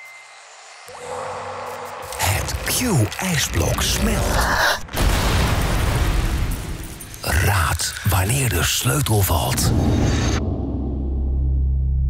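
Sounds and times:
deep drone: 9.3s - 12.0s.

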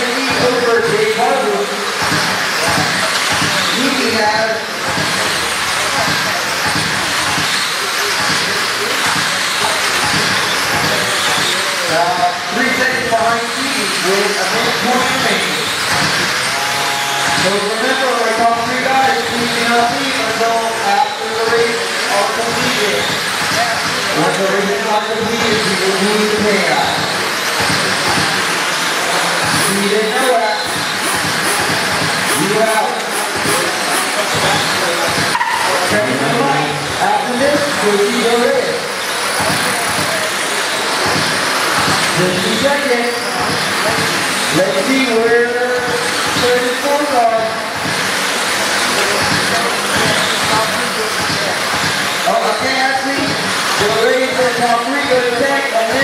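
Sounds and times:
indistinct voices: 0.0s - 56.0s
radio-controlled cars whirring: 0.0s - 56.0s.

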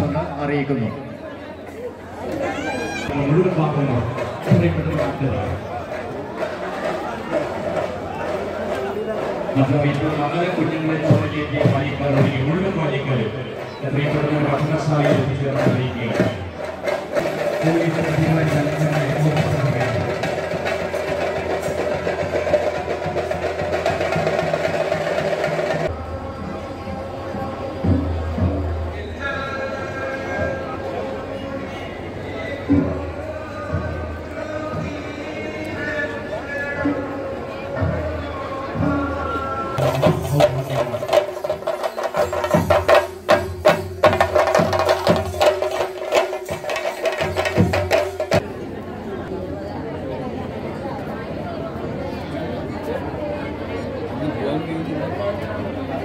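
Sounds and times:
crowd din: 0.0s - 56.0s
drums beating rapidly: 2.6s - 26.1s, 37.8s - 48.6s.

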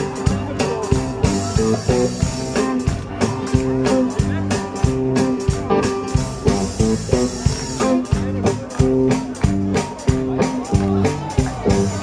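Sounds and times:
bass: 0.0s - 12.0s
drum beat: 0.0s - 12.0s
electric guitar: 0.0s - 12.0s
keyboard: 0.0s - 12.0s.

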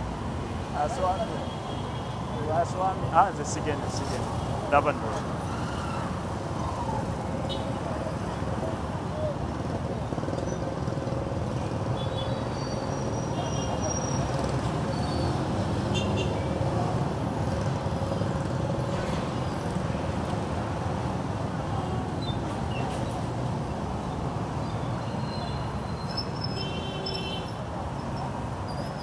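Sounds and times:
vehicles running: 0.0s - 26.4s.

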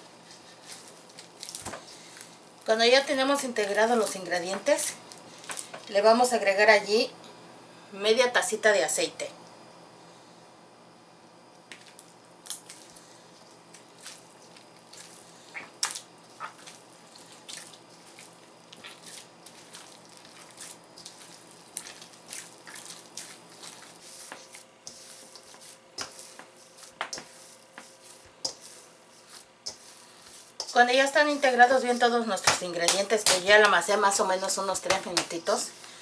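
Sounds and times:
hands kneading wet dough: 13.6s - 36.0s.

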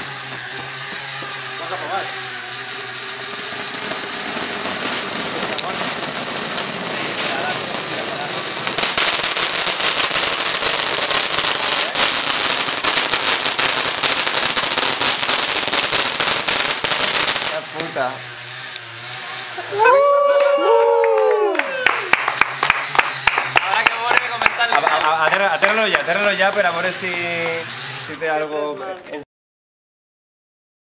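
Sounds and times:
sparks crackling: 0.0s - 20.1s, 21.9s - 28.4s
pyrotechnic fountain hissing: 0.0s - 20.2s, 22.1s - 28.4s.

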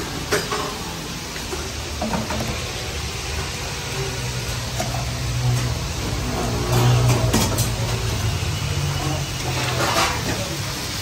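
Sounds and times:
frying hiss: 0.0s - 11.0s
gas burners rumbling: 0.0s - 11.0s.

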